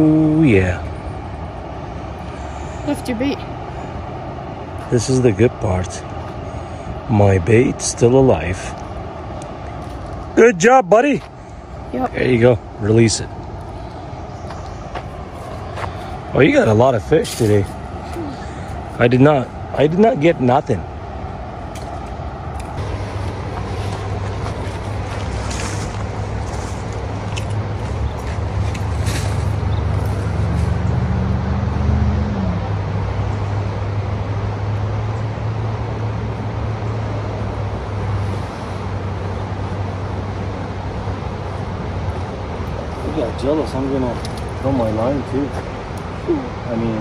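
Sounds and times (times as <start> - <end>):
motor engine droning: 0.0 - 47.0.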